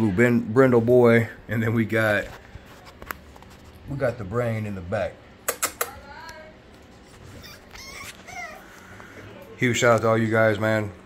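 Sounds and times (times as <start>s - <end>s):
puppies whimpering: 7.2s - 8.8s.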